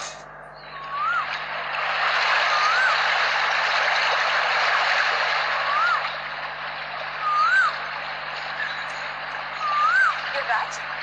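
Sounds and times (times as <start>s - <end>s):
whistled call: 0.0s - 3.4s, 5.4s - 6.3s, 7.0s - 10.9s.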